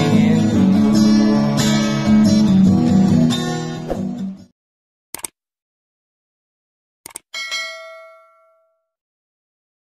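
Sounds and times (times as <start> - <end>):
bright bell ding: 7.4 - 8.9.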